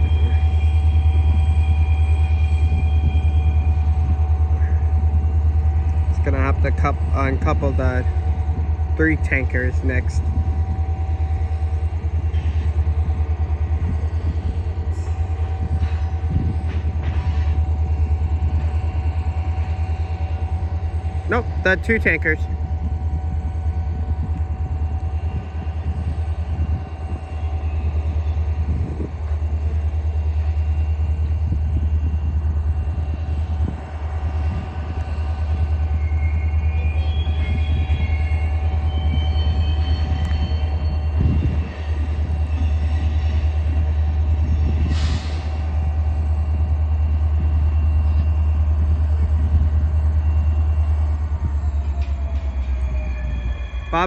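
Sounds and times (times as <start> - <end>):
diesel locomotives droning: 0.0 - 54.0.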